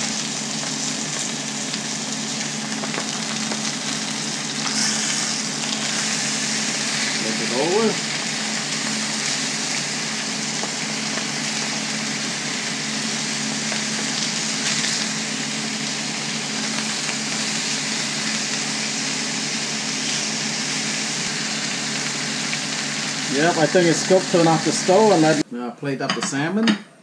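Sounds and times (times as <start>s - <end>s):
fish sizzling in a frying pan: 0.0s - 25.4s.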